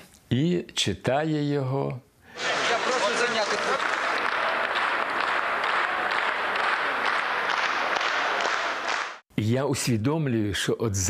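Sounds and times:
crowd applauding and cheering: 2.4s - 9.2s.

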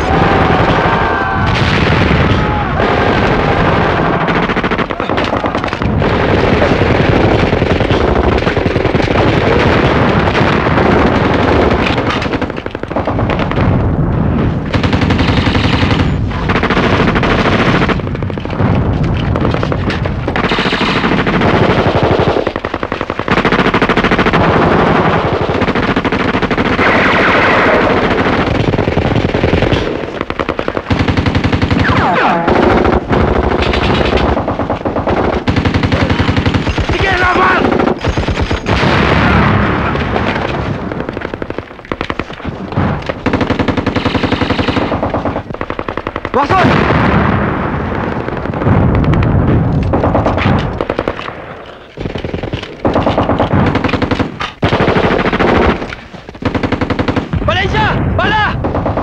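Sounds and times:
machine guns firing: 0.0s - 59.0s.

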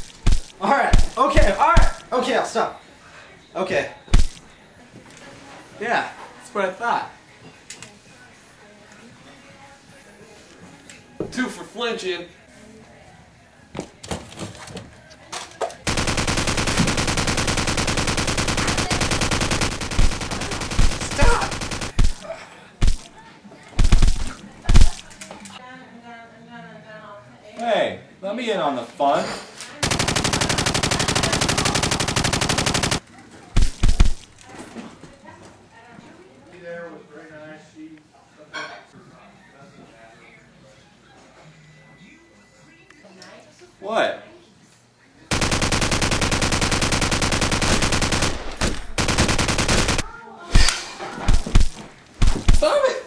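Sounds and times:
heavy thumps: 0.0s - 2.0s, 4.1s - 4.4s, 22.8s - 23.1s, 23.8s - 25.1s, 51.2s - 52.7s
gunfire bursts: 0.0s - 2.1s, 4.1s - 4.4s, 15.9s - 22.2s, 22.8s - 23.1s, 23.8s - 25.1s, 29.8s - 33.0s, 33.6s - 34.3s, 45.3s - 50.7s, 51.3s - 52.7s.

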